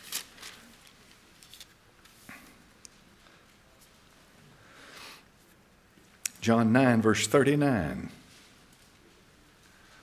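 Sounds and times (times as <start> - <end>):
pages turning: 0.0 - 2.2.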